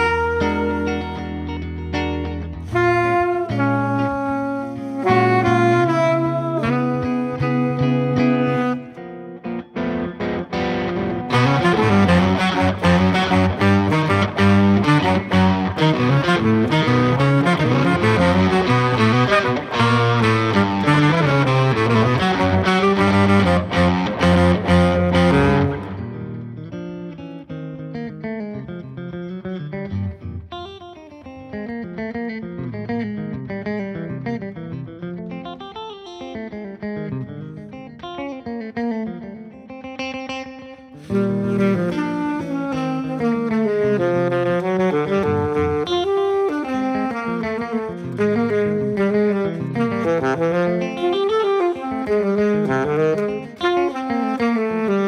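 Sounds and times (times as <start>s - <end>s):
distorted electric guitar: 0.0s - 55.0s
saxophone: 0.0s - 55.0s.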